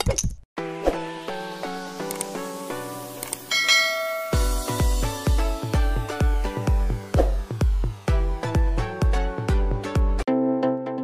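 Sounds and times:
electronic music with heavy bass: 1.2 - 10.2
bell-like notification chime: 3.5 - 4.9.

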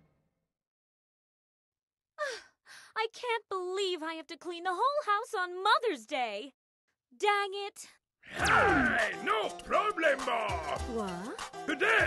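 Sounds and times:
woman sighing: 2.2 - 2.9.

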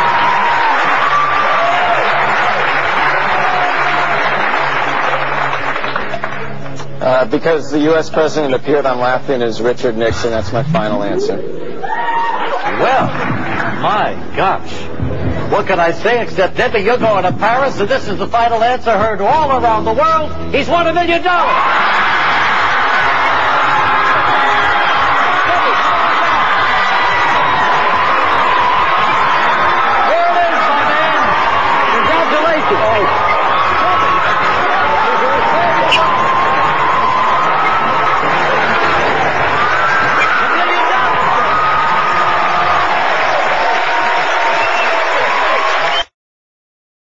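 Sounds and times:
audience cheering and applauding: 0.0 - 7.0, 11.6 - 14.0, 21.4 - 46.1
music playing: 0.0 - 44.5.

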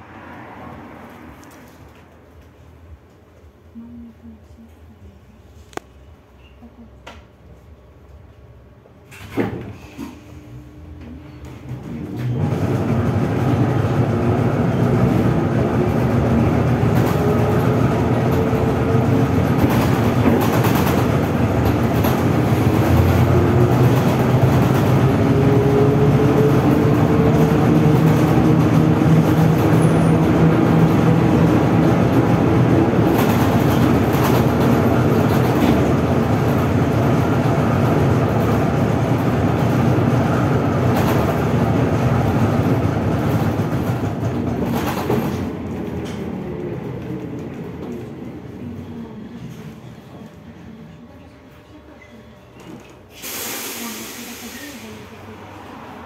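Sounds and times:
bus road and body rumble: 0.0 - 56.0.

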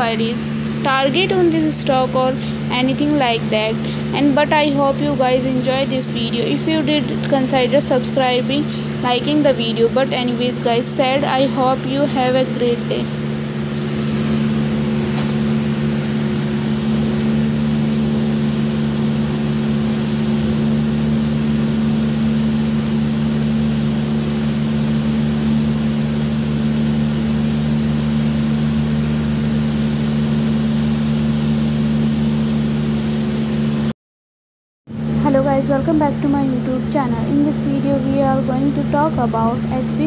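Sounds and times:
machine hum: 0.0 - 33.9, 34.9 - 40.0.

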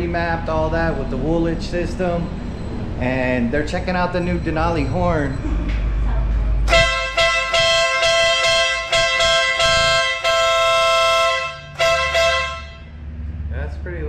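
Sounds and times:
motorcycle horn blasts: 6.7 - 13.0.

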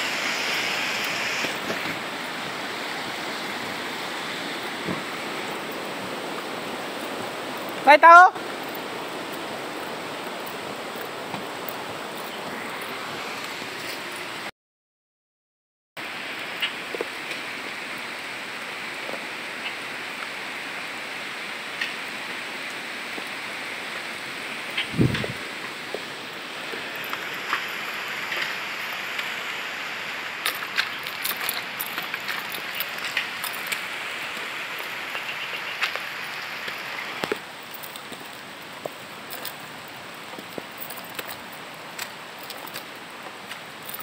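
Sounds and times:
rain falling on vegetation: 0.0 - 14.4, 16.0 - 44.0.

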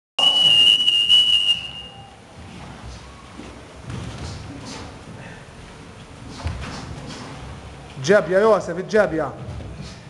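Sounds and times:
high-pitched whistle blast: 0.2 - 2.1.

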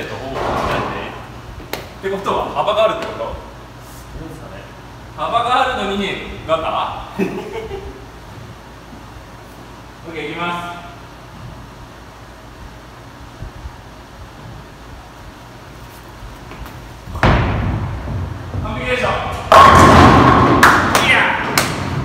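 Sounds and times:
bowling ball rolling rumble: 17.0 - 22.0
bowling ball thud: 17.1 - 18.7, 19.3 - 22.0
bowling pins crashing: 17.1 - 22.0.

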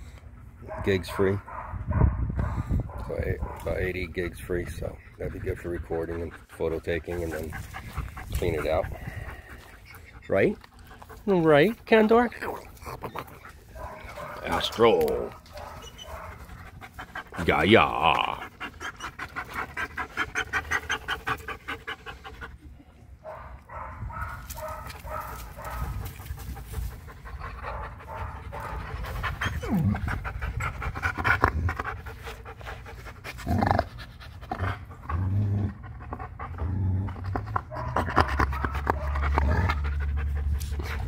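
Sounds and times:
dog panting: 2.4 - 41.0.

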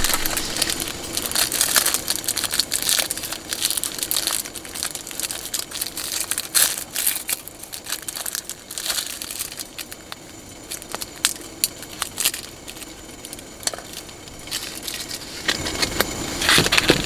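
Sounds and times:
cellophane wrapper crinkling: 0.0 - 17.0
foil packet rustling: 0.0 - 17.0.

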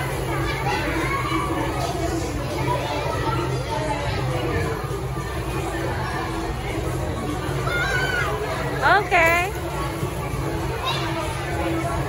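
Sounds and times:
children's voices: 0.0 - 8.9, 10.4 - 12.0
adults talking: 0.0 - 12.0.

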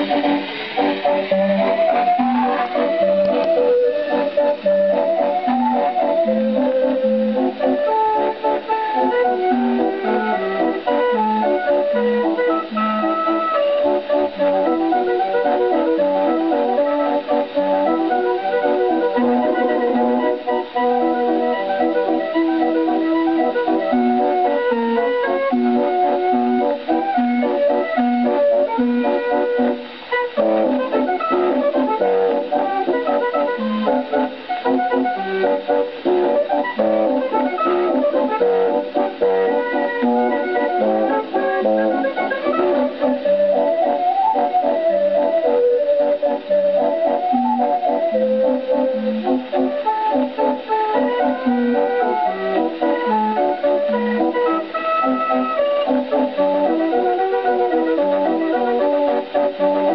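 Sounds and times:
street organ waltz on gramophone: 0.0 - 59.9.

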